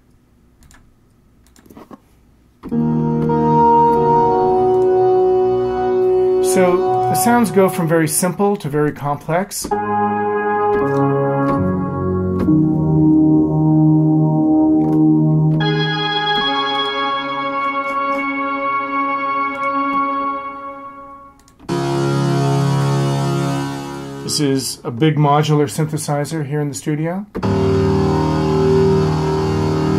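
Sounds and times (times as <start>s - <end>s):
buzzy synthesizer held tone: 2.7s - 8.4s, 9.7s - 24.6s, 27.4s - 29.9s
synthesizer held notes: 2.7s - 8.6s, 9.6s - 24.6s, 27.4s - 29.9s.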